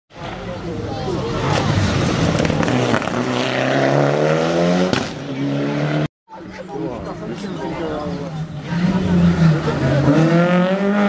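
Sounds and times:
rally car engine at full throttle: 0.2s - 6.1s, 7.0s - 11.0s.

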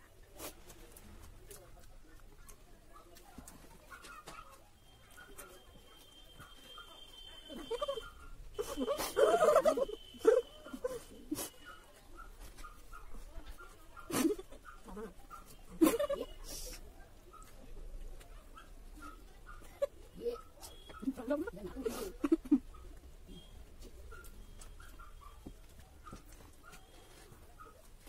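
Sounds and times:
people chewing food: 0.0s - 28.0s.

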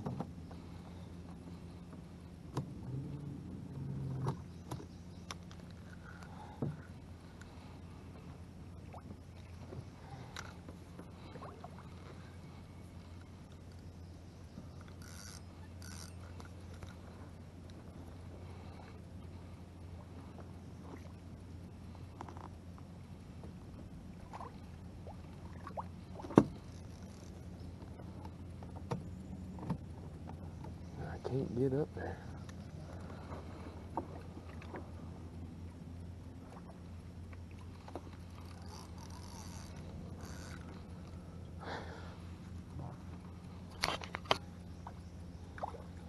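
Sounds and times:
steady low hum: 0.0s - 46.0s
fishing reel clicks and knocks: 14.8s - 17.0s, 38.4s - 40.7s.

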